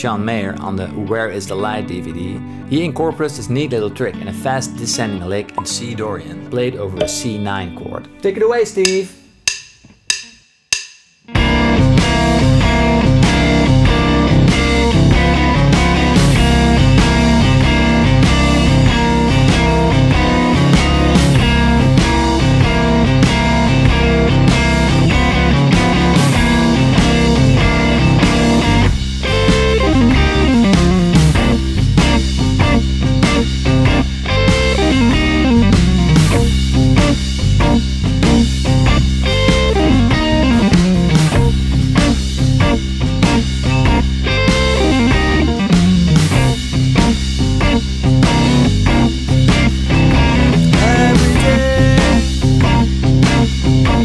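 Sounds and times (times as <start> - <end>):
backing track with bass and beat: 7.0 - 7.4, 8.8 - 54.0
electric guitar blues lick: 11.3 - 54.0.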